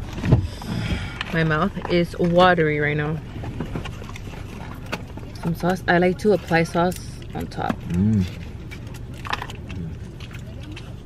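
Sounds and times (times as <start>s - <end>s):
car interior low rumble: 0.0s - 11.0s.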